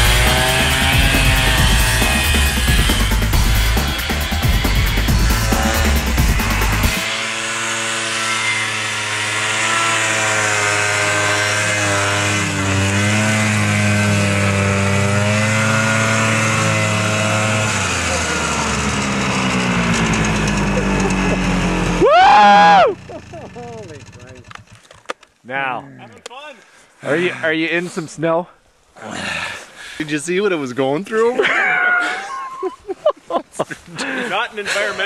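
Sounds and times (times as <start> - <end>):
snowmobile throttle blip: 0.0 - 6.9
music: 0.0 - 7.0
snowmobile engine idling: 0.0 - 7.0, 16.5 - 24.9.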